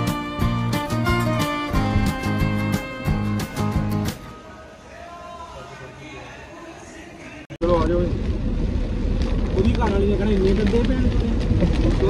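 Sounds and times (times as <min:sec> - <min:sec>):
people's voices: 0:04.2 - 0:08.2
road and engine rumble in car: 0:07.6 - 0:12.0.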